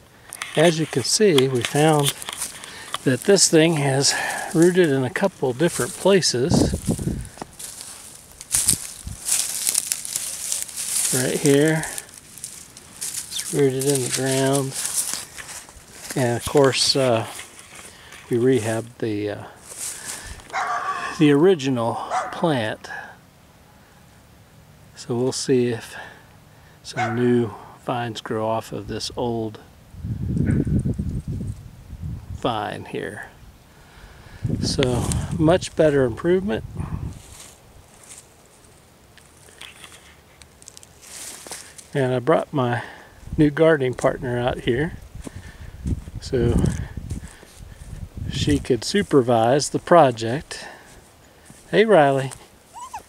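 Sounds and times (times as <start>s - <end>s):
footsteps through dry leaves: 0.6s - 19.0s, 19.6s - 21.2s, 37.1s - 42.0s, 45.0s - 49.8s, 50.4s - 51.7s
wind buffeting microphone: 5.3s - 7.8s, 8.5s - 9.4s, 29.9s - 32.5s, 34.2s - 37.4s, 44.1s - 48.8s.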